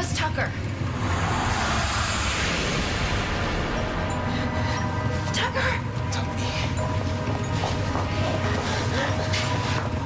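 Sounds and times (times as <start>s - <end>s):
steady low rumble: 0.0s - 7.5s.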